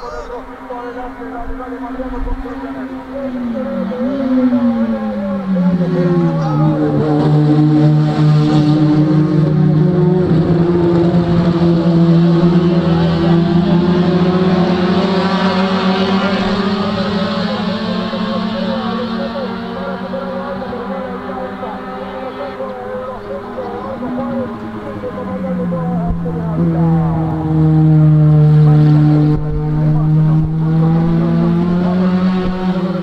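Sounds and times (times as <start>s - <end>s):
racing car engines: 0.0s - 33.0s.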